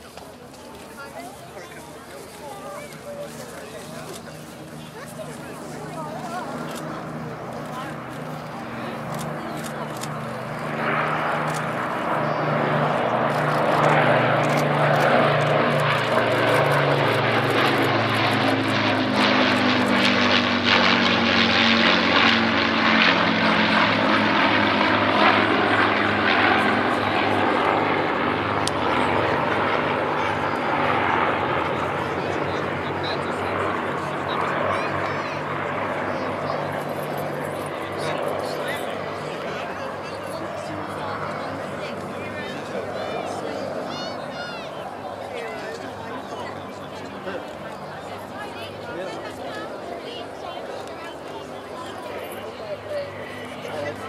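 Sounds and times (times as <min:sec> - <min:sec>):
propeller aircraft drone: 0:00.0 - 0:54.0.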